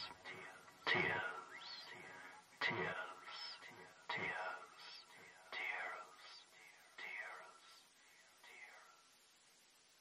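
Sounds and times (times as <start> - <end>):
whispered voice with echo: 0.0 - 9.1.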